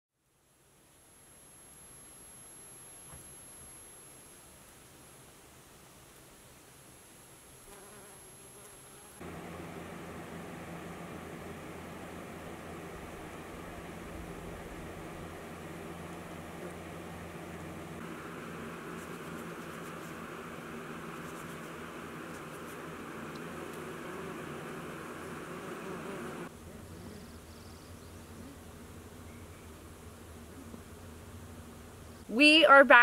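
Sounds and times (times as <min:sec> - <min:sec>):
bumblebee buzzing: 0:07.6 - 0:32.2.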